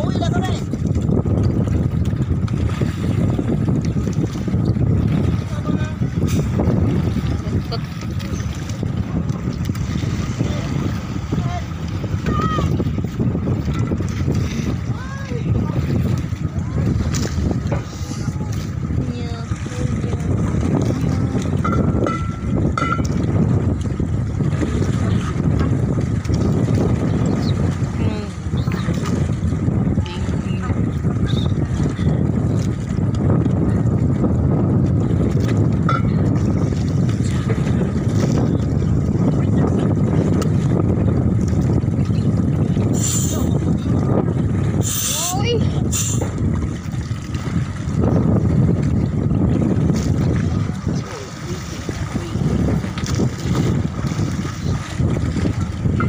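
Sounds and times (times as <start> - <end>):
boat engine idling: 0.0 - 56.0.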